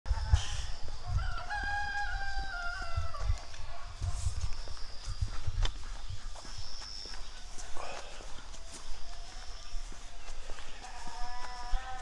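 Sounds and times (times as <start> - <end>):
rooster crowing: 1.1 - 3.4.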